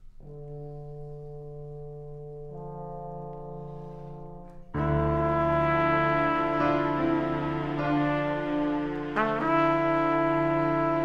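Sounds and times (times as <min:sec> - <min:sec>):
low brass note held: 0:03.3 - 0:11.0
orchestral music: 0:03.6 - 0:11.0.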